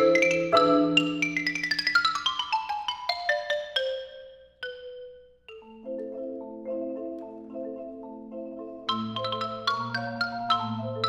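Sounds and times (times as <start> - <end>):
marimba waltz chords: 0.0 - 11.0
xylophone run: 0.0 - 11.0.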